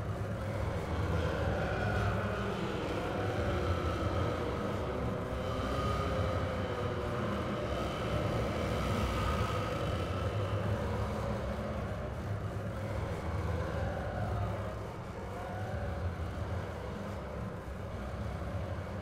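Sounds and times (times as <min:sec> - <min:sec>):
dark ambient music: 0:00.0 - 0:19.0.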